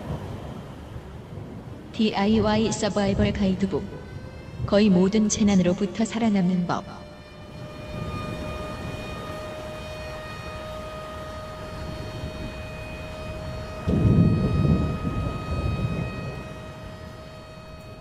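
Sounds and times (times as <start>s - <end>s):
low rumbling: 0.0s - 18.0s.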